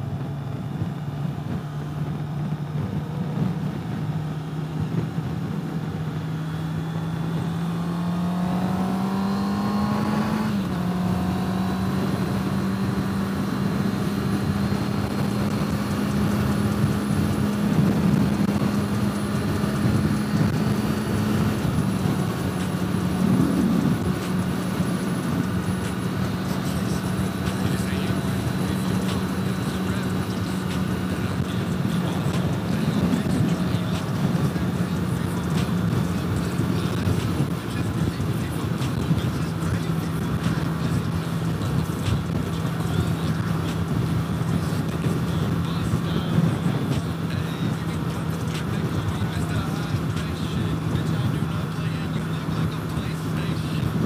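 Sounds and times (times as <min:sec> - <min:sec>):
heavy wind noise: 0:00.0 - 0:54.0
motorcycle engine running: 0:00.0 - 0:54.0.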